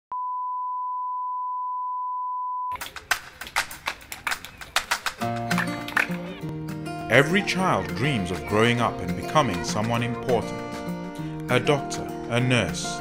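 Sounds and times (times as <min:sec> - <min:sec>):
percussive music: 0:02.7 - 0:13.0.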